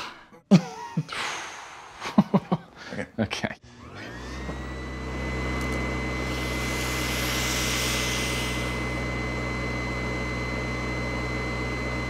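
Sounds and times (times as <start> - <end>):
man chuckling: 0.3 - 1.2, 2.0 - 3.6
man exhaling: 1.1 - 2.2.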